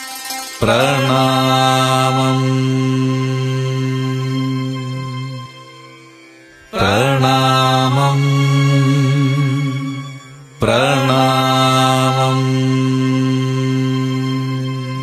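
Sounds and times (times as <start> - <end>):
low drone: 0.0 - 15.0
person singing long wavering notes: 0.0 - 15.0.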